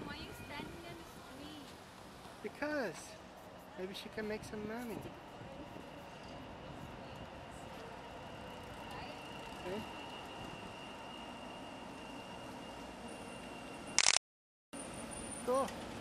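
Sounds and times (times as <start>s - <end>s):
light rail train approaching: 0.0s - 14.0s, 14.8s - 16.0s
street background noise: 0.0s - 14.2s, 14.8s - 16.0s.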